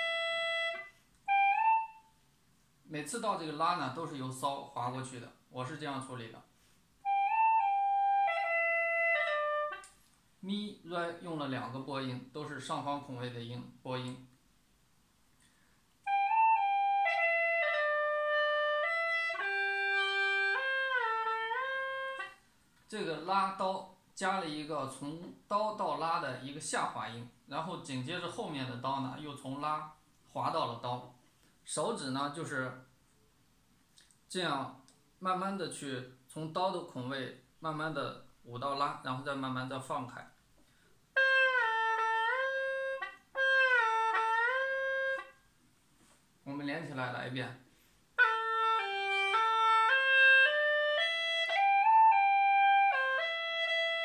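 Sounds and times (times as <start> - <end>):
gourd flute melody: 0.0 - 2.3, 7.0 - 10.0, 16.0 - 22.5, 41.1 - 45.5, 48.2 - 54.0.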